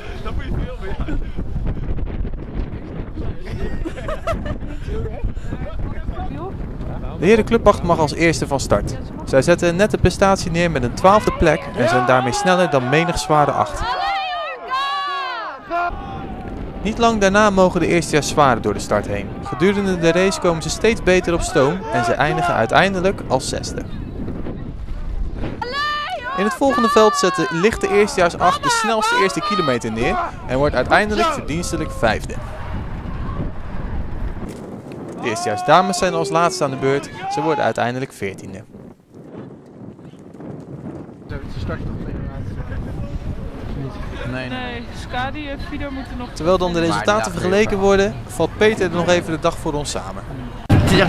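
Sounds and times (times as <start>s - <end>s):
wind buffeting microphone: 0.0s - 14.3s, 15.6s - 51.0s
people talking: 4.9s - 15.0s, 16.8s - 23.9s, 25.6s - 32.4s, 35.2s - 38.6s, 43.8s - 51.0s
person shouting: 25.6s - 30.4s, 35.2s - 37.6s.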